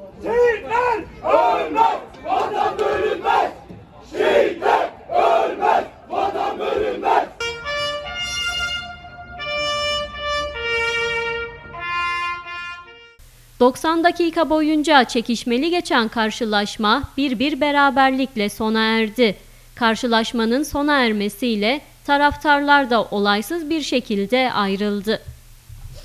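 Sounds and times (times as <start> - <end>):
stadium crowd chanting: 0.0 - 7.4
trumpet melody: 7.4 - 13.2.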